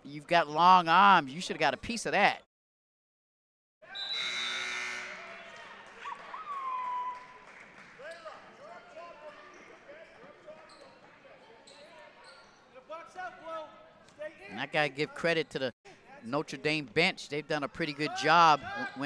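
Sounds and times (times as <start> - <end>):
voices of players and spectators: 4.9 - 19.0
sneakers squeaking: 9.2 - 12.8.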